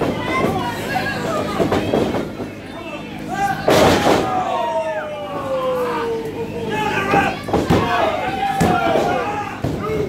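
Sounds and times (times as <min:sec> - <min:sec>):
spectators shouting: 0:02.7 - 0:10.0.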